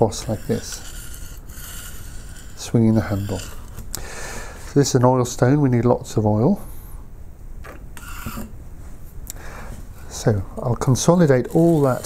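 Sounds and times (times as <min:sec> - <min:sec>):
chisel scraping on a bench stone: 0:00.0 - 0:03.9, 0:08.0 - 0:08.5, 0:11.2 - 0:12.0.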